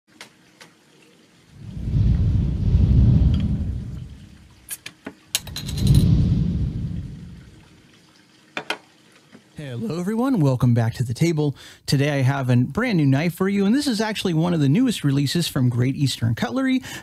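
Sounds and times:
wind rumbling on microphone: 0:01.6 - 0:04.6, 0:05.4 - 0:07.7.

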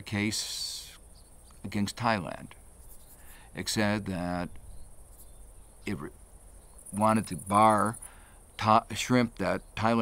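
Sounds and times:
insects chirping: 0:00.0 - 0:10.0
person speaking: 0:03.5 - 0:04.5, 0:06.9 - 0:08.0.

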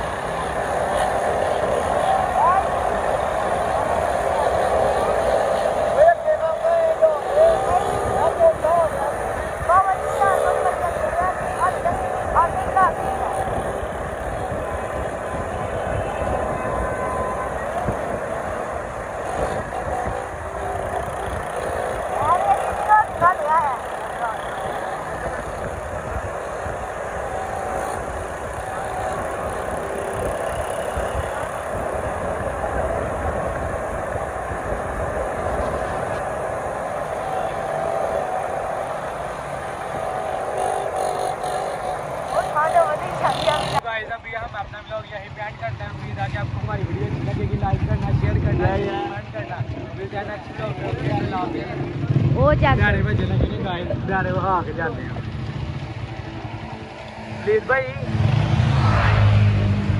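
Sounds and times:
small motorcycles running: 0:00.0 - 0:59.9
voices shouting: 0:00.8 - 0:34.9
wind on microphone: 0:07.9 - 0:24.0, 0:24.6 - 0:42.3.

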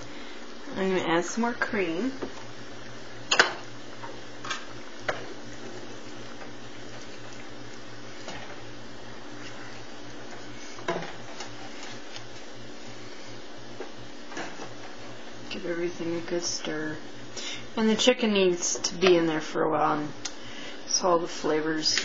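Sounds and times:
steady low hum: 0:00.0 - 0:22.0
wooden spoon stirring sauce: 0:05.1 - 0:12.6.

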